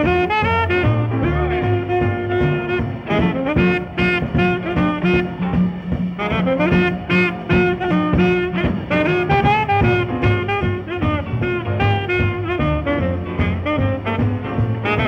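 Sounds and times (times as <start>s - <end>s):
double bass: 0.0s - 15.0s
drums: 0.0s - 15.0s
piano: 0.0s - 15.0s
saxophone: 0.0s - 15.0s
trombone: 0.0s - 15.0s
trumpet: 0.0s - 15.0s.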